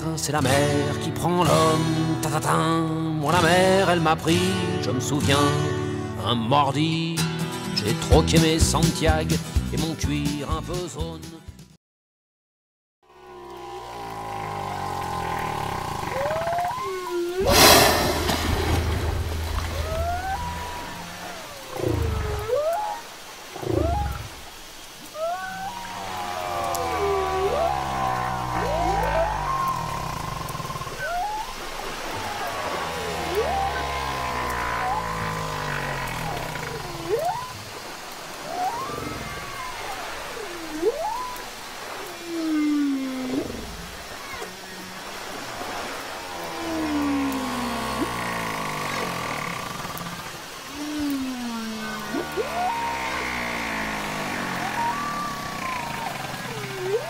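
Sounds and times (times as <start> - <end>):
whale calls swooping in pitch: 13.1 - 24.4, 25.0 - 57.0
loud rushing burst: 17.4 - 19.8.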